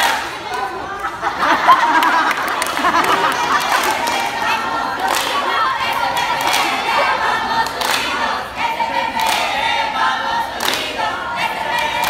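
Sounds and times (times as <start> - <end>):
young voices chanting a cheer: 0.0 - 12.0.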